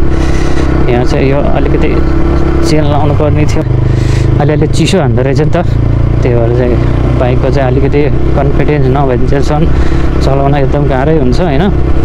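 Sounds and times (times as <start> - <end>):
motorcycle engine running: 0.0 - 12.0
man talking: 0.8 - 11.8.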